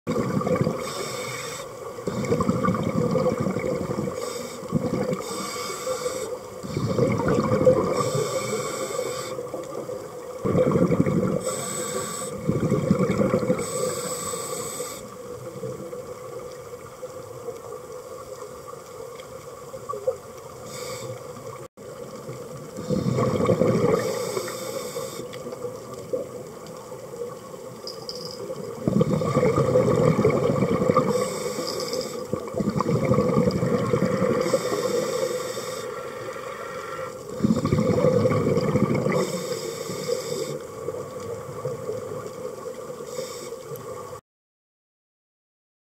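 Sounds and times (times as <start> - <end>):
exhaled bubbles rushing: 0.1 - 0.9, 2.0 - 5.3, 6.6 - 8.2, 9.8 - 11.5, 12.4 - 13.8, 22.3 - 24.4, 28.7 - 31.4, 32.3 - 34.8, 37.2 - 39.4
regulator inhale hiss: 0.8 - 2.5, 4.0 - 7.2, 7.9 - 9.6, 11.4 - 12.5, 13.6 - 15.2, 20.6 - 21.4, 22.8 - 23.4, 24.0 - 25.4, 31.0 - 32.3, 34.0 - 38.0, 39.2 - 40.7, 43.0 - 43.8.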